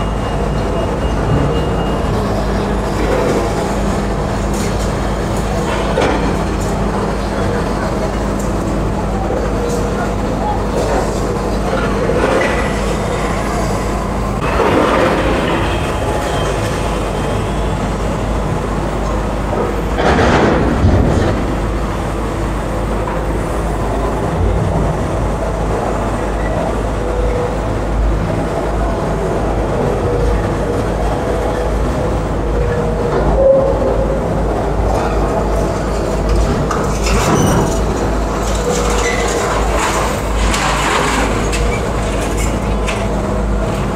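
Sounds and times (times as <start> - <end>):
excavator diesel engines running: 0.0 - 43.9.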